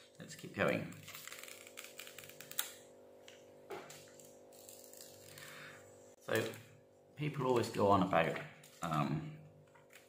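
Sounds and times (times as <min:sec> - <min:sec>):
plastic film peeling clicks: 0:01.0 - 0:02.8.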